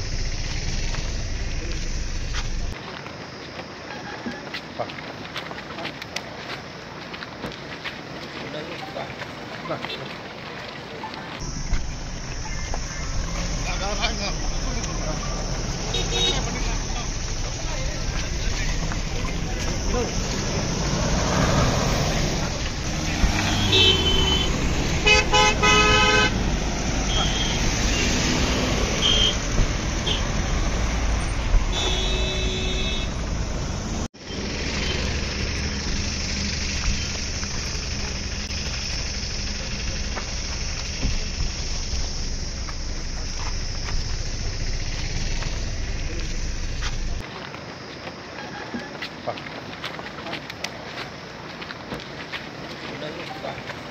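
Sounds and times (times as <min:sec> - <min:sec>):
car horns honking: 0:12.4 - 0:17.3, 0:21.8 - 0:33.6.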